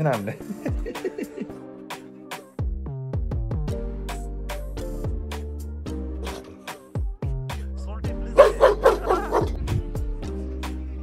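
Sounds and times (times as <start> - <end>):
background music with steady beat: 0.0 - 11.0
large dog barking: 8.4 - 9.6.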